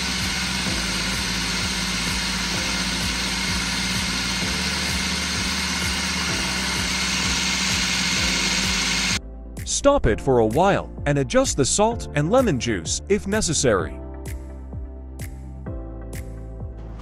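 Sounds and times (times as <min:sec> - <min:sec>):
food processor motor whirring: 0:00.0 - 0:09.2.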